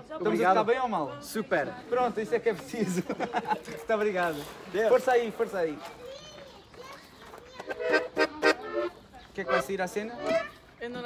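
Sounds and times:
accordion chords: 0:07.7 - 0:10.6.

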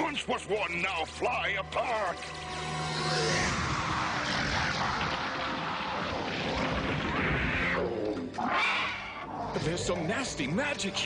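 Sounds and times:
dense noisy rush: 0:02.5 - 0:08.0
monster growling and snarling: 0:03.0 - 0:09.6.

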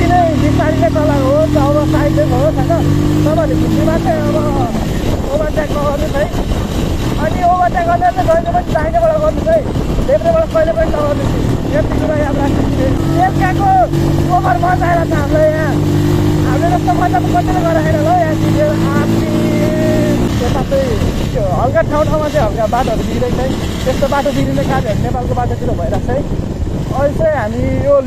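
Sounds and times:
person speaking: 0:00.0 - 0:26.3
motorcycle engine cruising: 0:00.0 - 0:28.0
wind rushing over microphone: 0:00.0 - 0:28.0.

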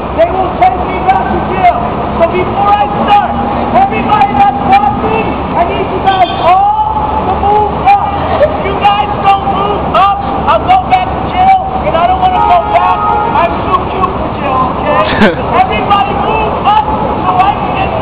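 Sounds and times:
traffic rumble: 0:00.0 - 0:18.0.

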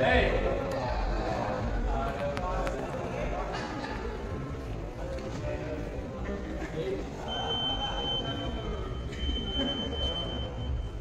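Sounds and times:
metal detector alarm beeping: 0:07.3 - 0:11.0.

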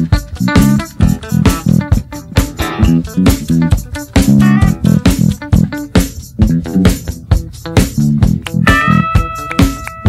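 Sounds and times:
bass guitar: 0:00.0 - 0:10.0
electric guitar: 0:00.0 - 0:10.0
steady drum beat: 0:00.0 - 0:10.0.

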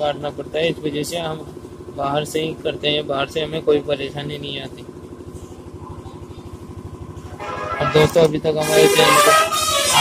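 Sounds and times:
small engine idling: 0:00.0 - 0:10.0.

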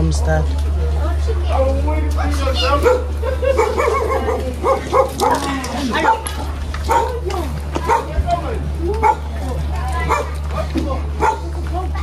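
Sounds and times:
people talking: 0:00.0 - 0:12.0
steady low hum: 0:00.0 - 0:12.0.

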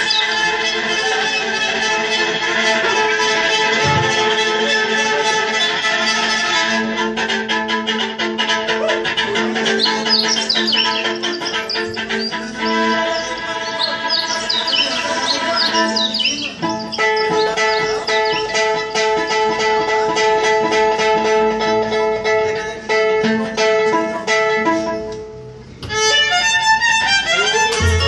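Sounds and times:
plucked strings: 0:00.0 - 0:28.0
violin sustained notes: 0:00.0 - 0:28.0.

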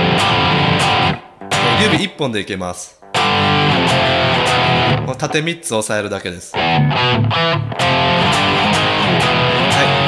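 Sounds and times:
distorted electric guitar power chord: 0:00.0 - 0:02.0, 0:03.1 - 0:05.1, 0:06.6 - 0:10.0.

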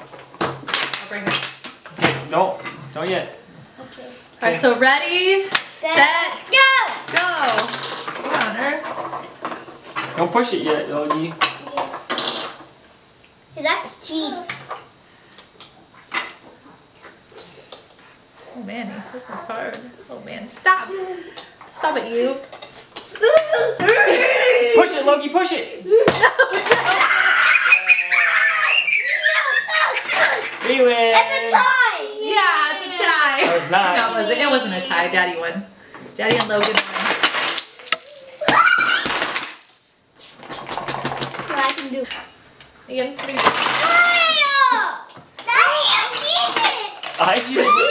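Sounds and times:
child squealing: 0:23.2 - 0:24.9, 0:26.9 - 0:30.5, 0:38.2 - 0:39.2, 0:47.5 - 0:47.9
blocks clattering: 0:36.3 - 0:39.8, 0:43.2 - 0:44.1
toy blocks clacking: 0:36.4 - 0:38.3.

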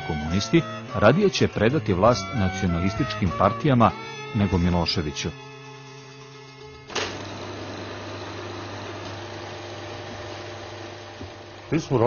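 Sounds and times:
film projector whirring and clattering: 0:05.6 - 0:12.0.

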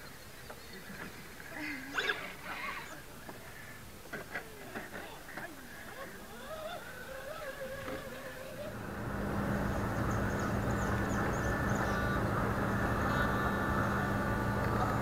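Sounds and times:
electric motor whining: 0:07.8 - 0:15.0
low hum: 0:07.8 - 0:15.0.

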